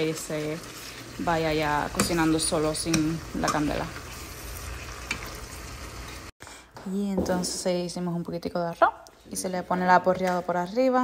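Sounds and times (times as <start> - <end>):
food sizzling in a frying pan: 0.0 - 6.4.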